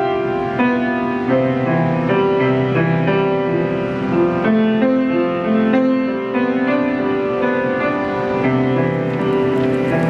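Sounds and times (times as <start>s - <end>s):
slow grand piano melody: 0.0s - 10.0s.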